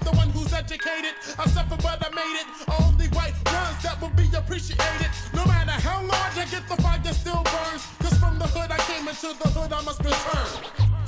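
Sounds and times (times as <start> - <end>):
rapping over a beat: 0.0 - 11.0.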